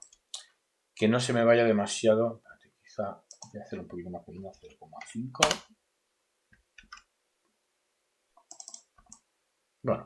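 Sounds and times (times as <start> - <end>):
computer mouse and keyboard clicks: 8.4 - 9.2.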